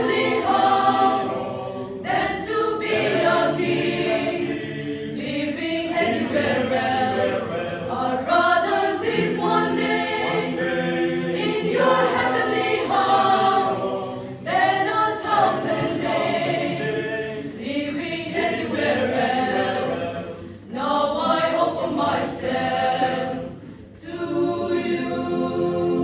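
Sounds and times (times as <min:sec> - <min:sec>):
choir singing a hymn: 0:00.0 - 0:26.0.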